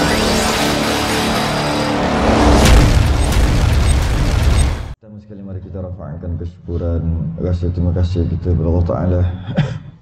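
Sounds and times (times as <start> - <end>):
cinematic burst with low rumble: 0.0 - 5.0.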